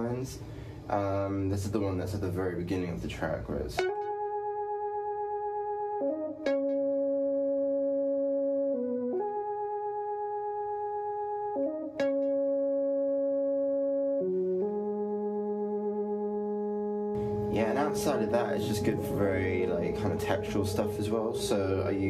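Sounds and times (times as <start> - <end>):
synthesizer held notes: 3.8 - 22.0.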